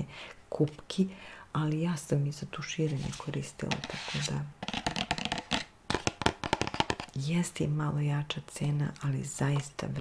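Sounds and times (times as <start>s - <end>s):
fingernails tapping on plastic bottle: 4.6s - 7.1s.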